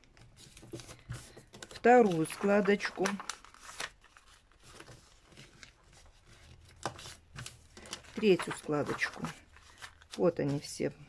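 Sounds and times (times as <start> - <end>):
paper crinkling: 0.0 - 11.0
paper rustling: 0.0 - 11.0.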